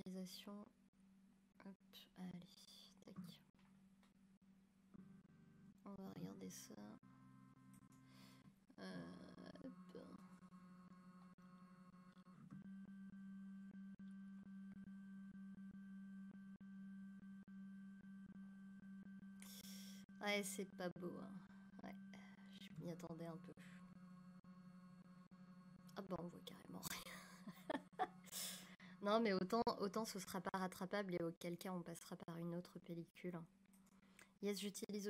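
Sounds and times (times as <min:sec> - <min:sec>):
faint steady low hum: 0:00.0 - 0:35.0
person speaking softly: 0:01.6 - 0:03.4.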